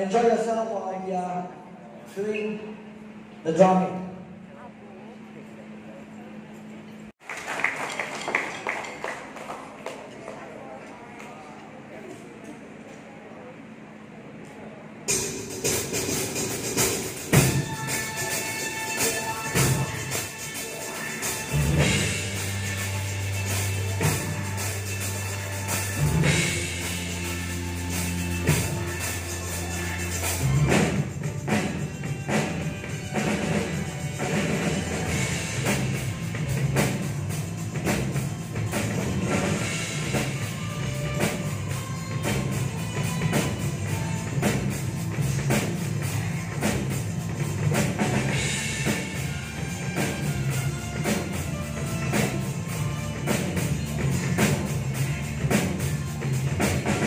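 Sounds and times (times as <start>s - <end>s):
drum kit with cymbal hits: 15.0s - 57.0s
pitched backing music: 15.1s - 57.0s.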